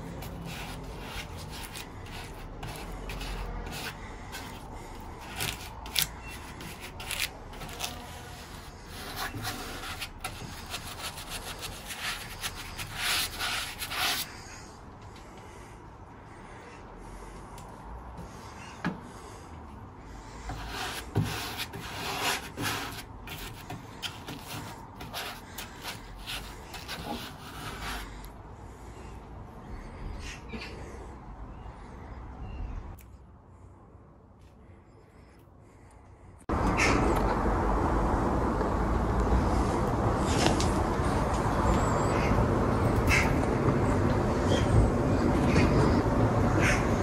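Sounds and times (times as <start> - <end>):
paintbrush scrubbing on wood: 0.0 - 14.4, 20.5 - 28.2.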